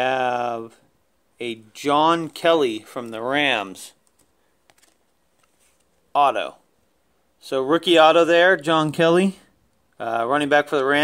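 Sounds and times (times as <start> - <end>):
trading cards clicking: 4.0 - 5.9.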